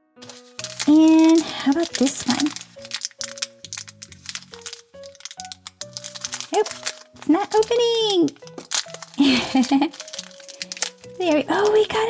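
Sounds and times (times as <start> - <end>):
background music with held notes: 0.0 - 12.0
plastic wrapper crinkling: 0.2 - 12.0.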